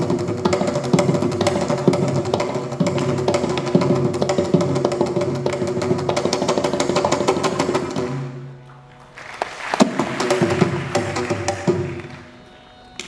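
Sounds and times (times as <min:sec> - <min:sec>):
mridangam drum strokes: 0:00.0 - 0:08.9, 0:09.6 - 0:13.0.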